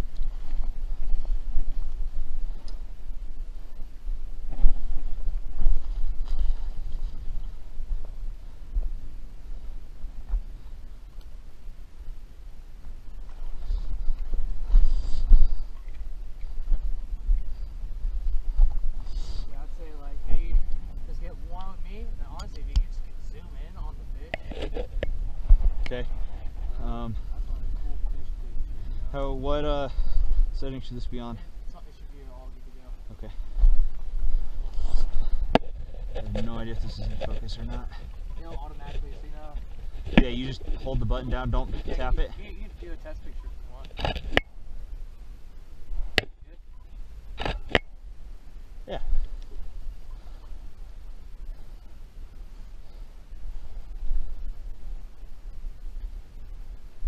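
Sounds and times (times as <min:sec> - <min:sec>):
low steady rumble: 0:00.0 - 0:57.0
quiet indistinct talk: 0:25.8 - 0:34.0.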